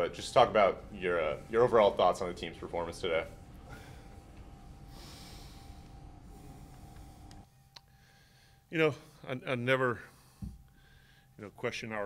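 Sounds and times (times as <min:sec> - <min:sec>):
faint room hum: 0:00.0 - 0:12.0
man breathing out through nose: 0:03.6 - 0:08.6, 0:10.1 - 0:11.3.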